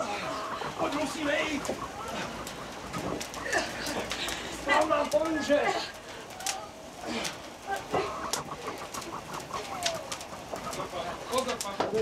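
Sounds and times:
burning straw crackling: 0:00.0 - 0:12.0.

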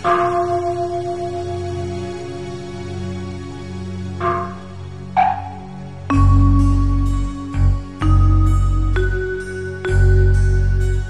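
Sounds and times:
soft background music: 0:00.0 - 0:11.0
bell ringing: 0:05.2 - 0:11.0.

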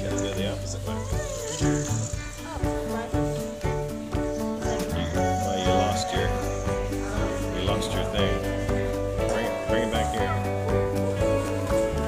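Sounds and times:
background music with held notes: 0:00.0 - 0:12.0.

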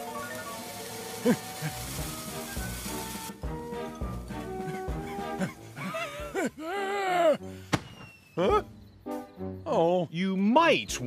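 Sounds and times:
firework fuse fizzing: 0:00.0 - 0:06.4, 0:07.6 - 0:08.4
background music: 0:00.0 - 0:11.0.

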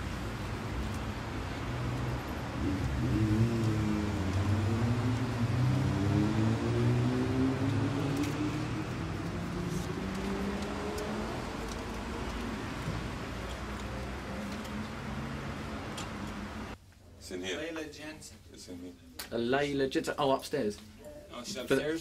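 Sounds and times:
low road rumble: 0:00.0 - 0:16.8
van engine accelerating: 0:01.6 - 0:16.8.

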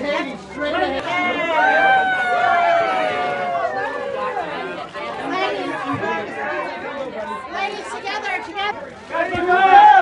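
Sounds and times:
murmur of overlapping chatter: 0:00.0 - 0:10.0.

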